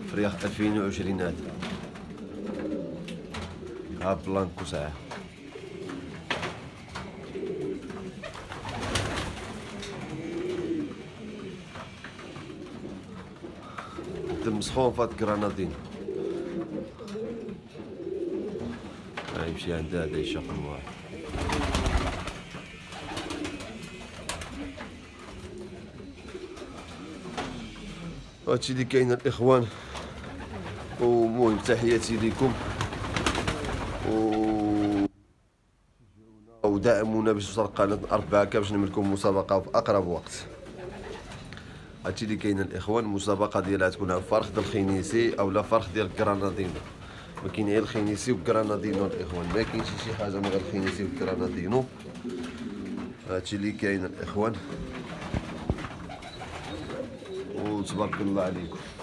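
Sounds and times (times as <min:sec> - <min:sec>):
pigeons cooing: 0:00.0 - 0:35.1, 0:37.4 - 0:59.0
man's drawn-out filler syllable: 0:34.0 - 0:35.2.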